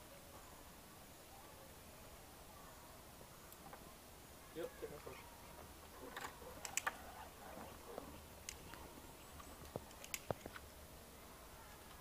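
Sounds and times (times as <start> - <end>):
sharp clicks: 6.1 - 7.0, 8.4 - 8.8, 9.6 - 10.7.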